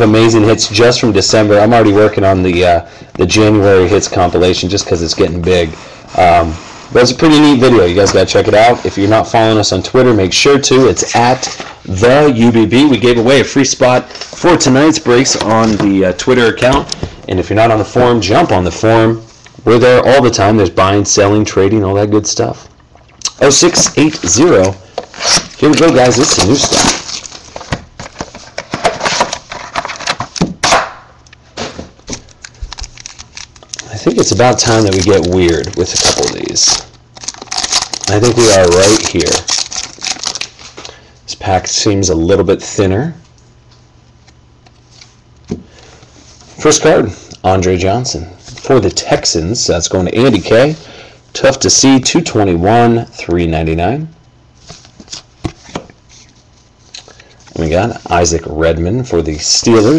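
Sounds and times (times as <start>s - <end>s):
plastic wrapper crinkling: 23.8s - 30.3s, 32.1s - 41.0s.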